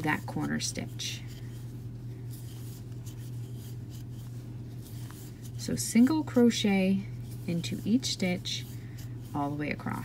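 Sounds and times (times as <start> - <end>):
steady low hum: 0.0 - 10.0
yarn rustling through stitches: 0.0 - 10.0.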